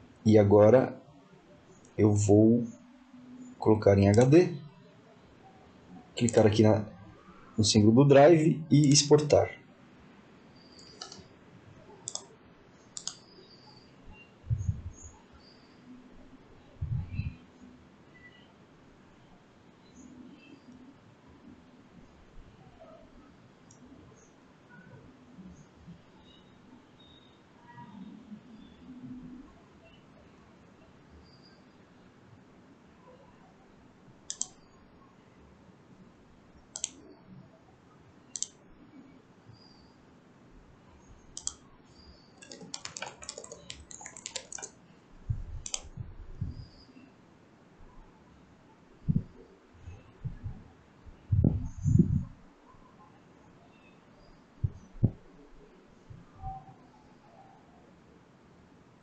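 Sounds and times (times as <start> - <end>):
computer mouse clicks: 6.2 - 6.6, 10.6 - 11.3, 11.9 - 14.2, 23.6 - 24.9, 34.3 - 34.8, 36.7 - 37.2, 38.3 - 38.6, 41.2 - 44.8, 45.6 - 46.8
low muffled rumble: 51.3 - 52.3.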